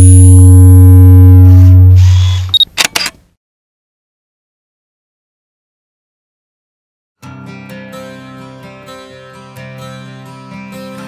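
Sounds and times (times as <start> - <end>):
deep sustained bass tone: 0.0 - 2.5
higher steady tones: 0.0 - 2.5
camera shutter clicks: 2.5 - 3.2.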